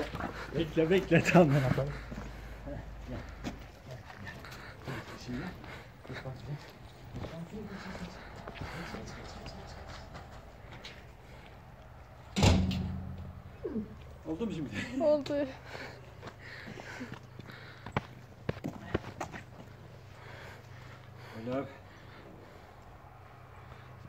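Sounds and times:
loud ringing thump: 12.4 - 13.4.

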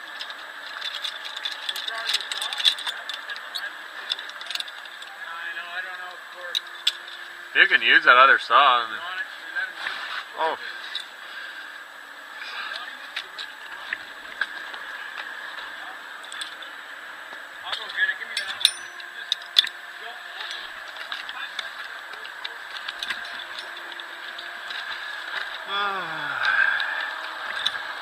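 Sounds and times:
climbing gear clinking: 0.0 - 5.3, 6.4 - 7.5, 12.7 - 16.7, 17.7 - 28.0.

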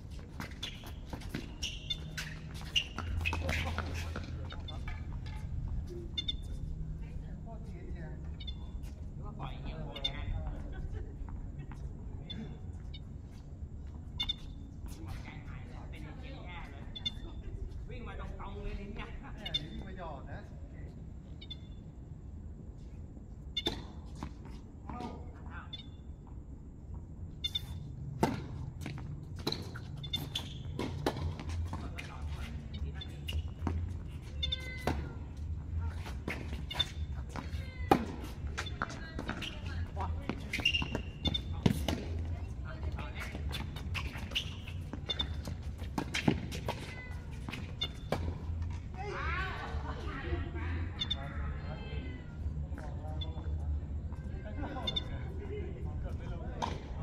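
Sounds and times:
tennis ball bouncing: 28.2 - 33.0, 33.6 - 35.2, 36.0 - 48.9, 56.6 - 56.9.

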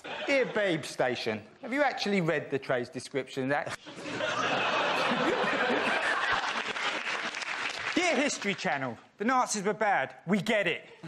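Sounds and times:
audience laughing: 0.0 - 1.0, 3.8 - 7.5
audience applauding: 5.5 - 8.7.

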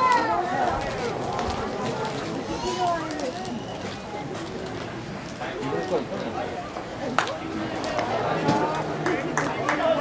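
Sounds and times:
spectators talking and calling out: 0.0 - 10.0.

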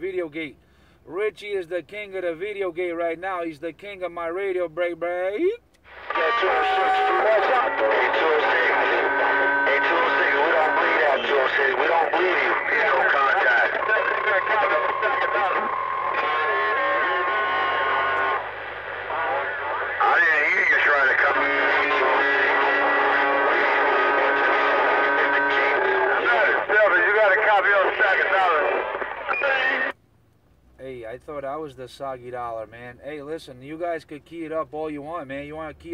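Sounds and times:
garbled overlapping radio voices: 5.4 - 29.9.

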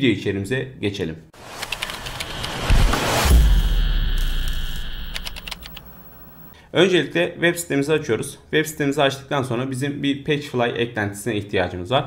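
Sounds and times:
keyboard typing clicks: 1.6 - 2.6, 5.1 - 5.9
low bass tone: 2.4 - 5.4.

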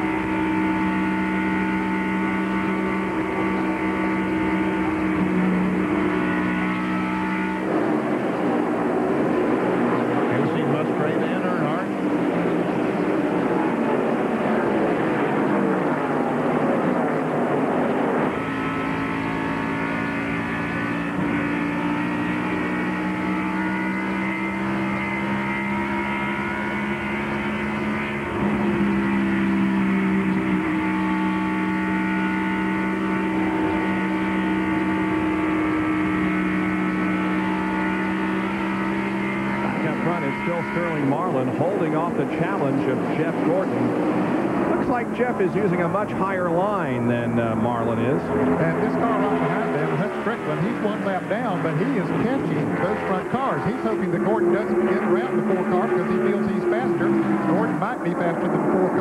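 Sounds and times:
race car engine high-revving: 0.0 - 59.0
race cars rushing past: 0.0 - 59.0.

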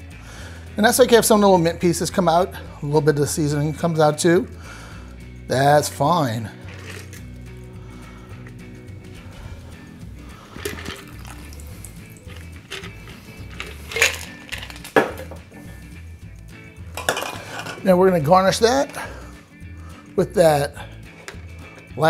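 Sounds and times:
background music: 0.0 - 22.0
liquid pouring over ice: 10.6 - 14.8.

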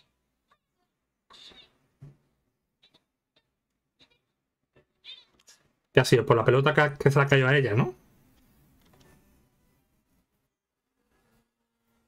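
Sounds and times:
high-pitched animal call: 0.0 - 1.8.

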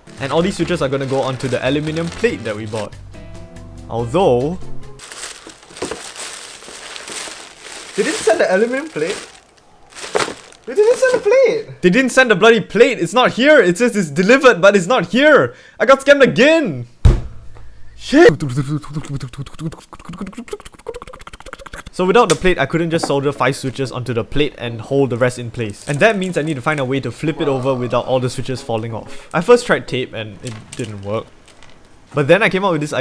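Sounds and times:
packaging crinkling and rustling: 0.2 - 2.9, 5.0 - 11.4, 25.6 - 26.9, 30.4 - 32.1.

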